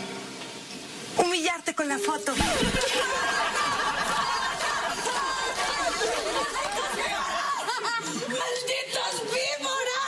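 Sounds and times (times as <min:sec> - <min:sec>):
laugh track: 0:02.4 - 0:08.8.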